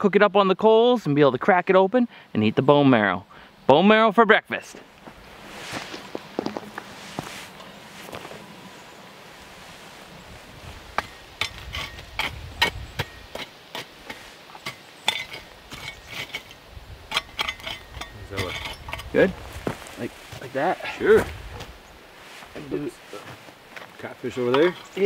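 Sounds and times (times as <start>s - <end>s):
shovel scraping hot coals: 9.4s - 23.4s, 24.0s - 25.0s.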